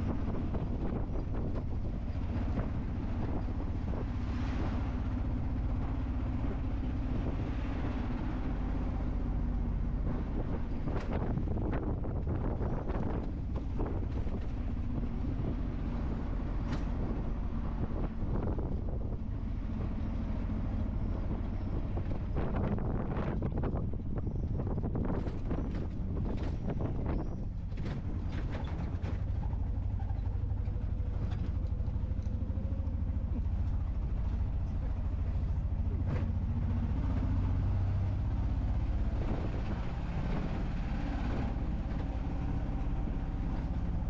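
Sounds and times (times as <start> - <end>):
wind on microphone: 0.0 - 44.0.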